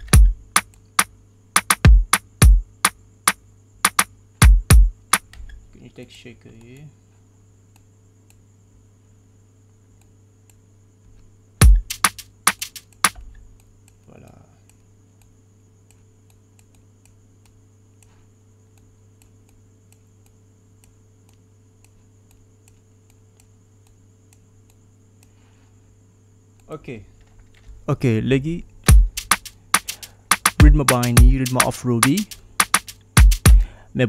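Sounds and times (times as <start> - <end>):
sharp percussive hits: 1.6 - 3.0, 3.9 - 5.3, 11.6 - 13.2, 28.9 - 33.7
mouse clicks: 11.9 - 25.4.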